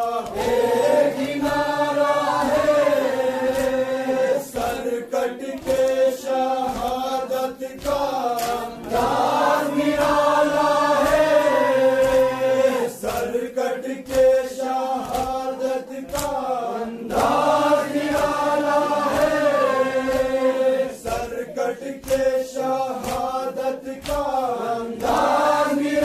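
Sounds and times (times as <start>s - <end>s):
hands slapping chests: 0.0s - 26.0s
men chanting a lament: 0.0s - 26.0s.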